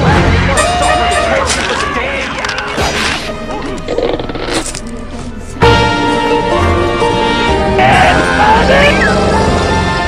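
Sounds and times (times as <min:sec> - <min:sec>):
music: 0:00.0 - 0:10.0.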